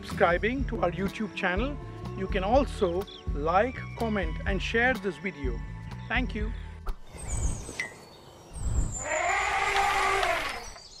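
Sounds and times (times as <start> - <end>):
elephant low rumble: 7.1 - 10.8
elephant trumpeting: 8.6 - 10.8.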